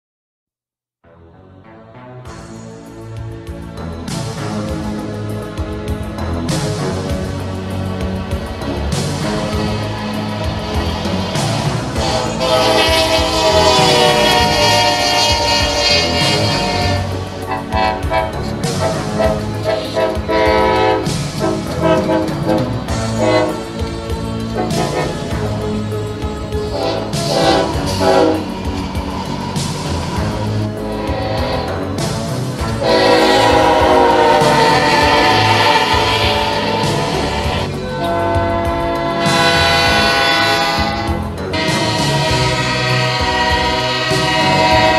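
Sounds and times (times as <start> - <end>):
rumble of passing train: 2.8 - 44.9
locomotive air horn blasting: 9.5 - 25.9, 26.6 - 44.9.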